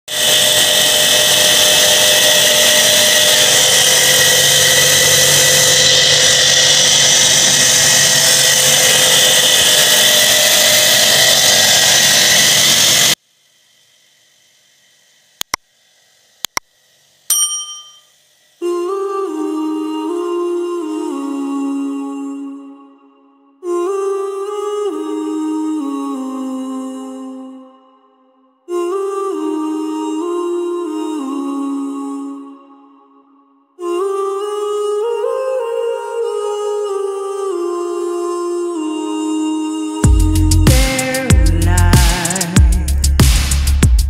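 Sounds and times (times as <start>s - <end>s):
loud mechanical noise: 0.1s - 13.2s
sharp clicks: 15.4s - 15.7s, 16.4s - 16.7s
ringing chime: 17.3s - 18.1s.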